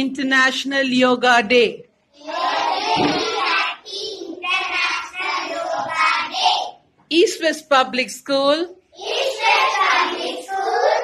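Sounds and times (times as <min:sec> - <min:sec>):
children chanting in unison: 0:02.1 - 0:06.8, 0:08.9 - 0:11.0.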